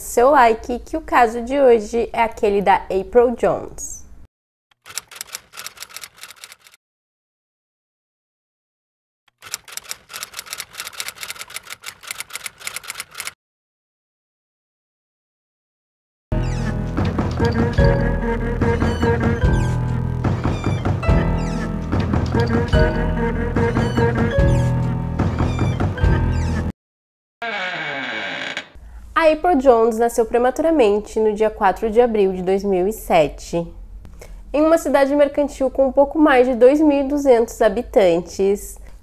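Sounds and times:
typewriter keys clattering: 0:04.8 - 0:06.8, 0:09.4 - 0:13.4.

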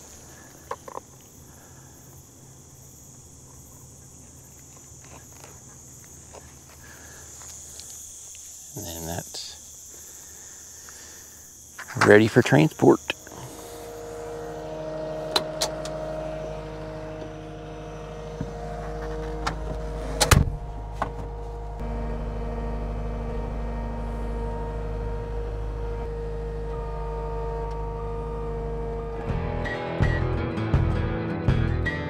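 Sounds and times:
skid steer engine running: 0:12.0 - 0:32.0.

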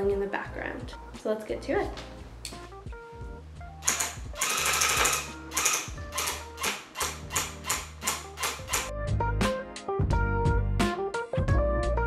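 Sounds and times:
background music: 0:00.0 - 0:12.0
tufting gun motor buzz: 0:03.8 - 0:08.9.

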